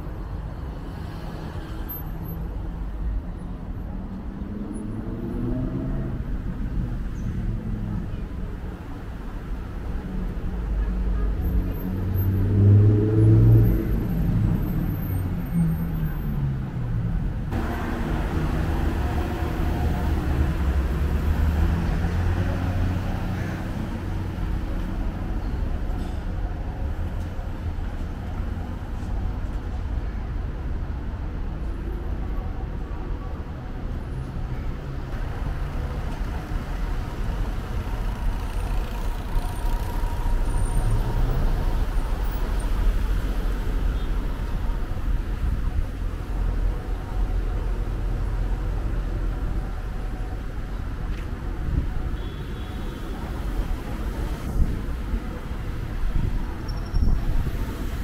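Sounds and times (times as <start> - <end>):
cars passing close by: 0.0 - 30.0, 34.0 - 52.4.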